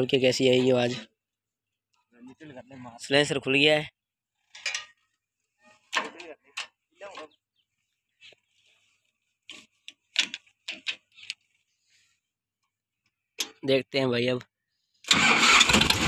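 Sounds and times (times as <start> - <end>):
person speaking: 0.0 - 1.1.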